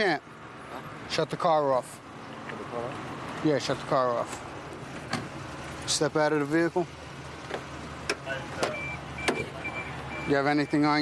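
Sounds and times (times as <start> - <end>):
car engine idling: 0.0 - 11.0.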